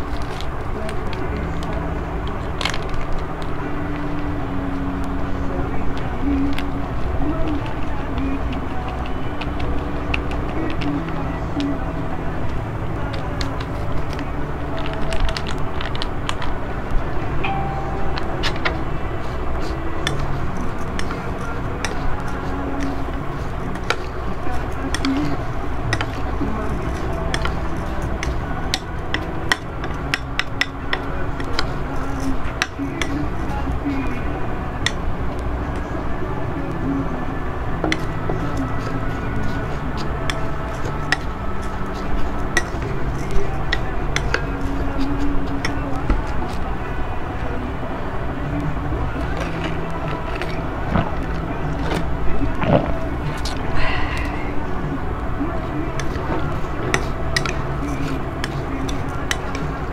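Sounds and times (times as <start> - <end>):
low background din: 0.0 - 59.9
muffled voices: 0.0 - 59.9.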